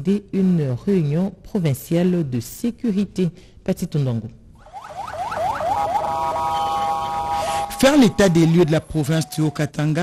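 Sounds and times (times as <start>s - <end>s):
electronic vehicle siren: 4.6s - 8.7s.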